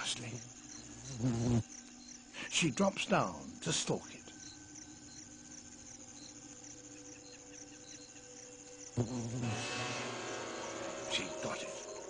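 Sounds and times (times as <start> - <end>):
fly buzzing: 0.0 - 2.3, 4.3 - 12.0
insect chirps: 0.0 - 12.0.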